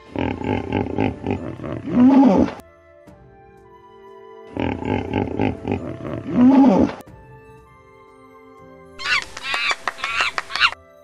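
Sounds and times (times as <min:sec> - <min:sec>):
soft background music: 0:00.0 - 0:11.0
monkey cries: 0:09.0 - 0:10.8.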